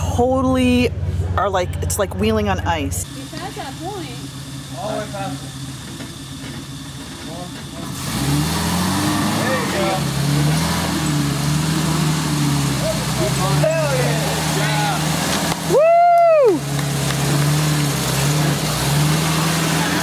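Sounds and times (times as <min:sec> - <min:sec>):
off-road vehicle engine revving: 0:00.0 - 0:20.0
voices calling out: 0:08.7 - 0:20.0.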